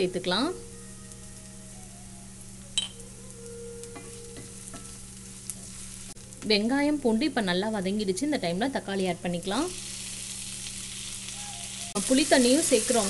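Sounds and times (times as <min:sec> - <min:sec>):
onions sizzling in oil: 0:00.0 - 0:08.1, 0:08.9 - 0:13.0.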